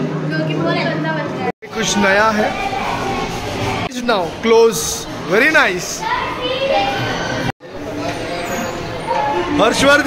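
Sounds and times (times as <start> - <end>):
children chattering: 0.3 - 3.9, 4.6 - 10.0.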